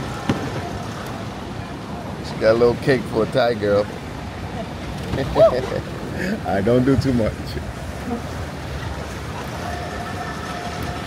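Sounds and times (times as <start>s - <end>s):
boat engines din: 0.0s - 11.0s.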